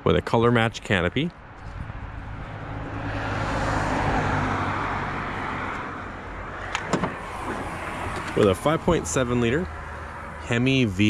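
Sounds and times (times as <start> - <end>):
vehicle passing: 1.4 - 11.0.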